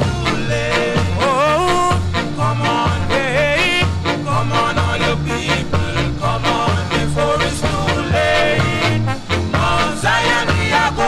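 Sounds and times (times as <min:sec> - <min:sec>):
ska record playing: 0:00.0 - 0:11.0.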